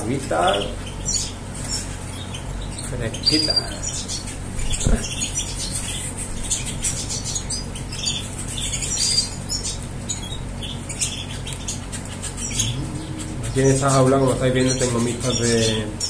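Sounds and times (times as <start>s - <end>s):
small birds chirping: 0.0s - 16.0s
steady low hum: 0.0s - 16.0s.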